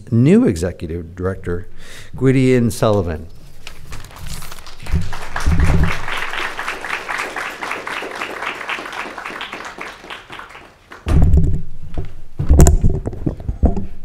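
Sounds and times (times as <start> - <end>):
audience applauding: 4.0 - 11.1
thumps on microphone: 5.0 - 6.1, 11.0 - 14.0.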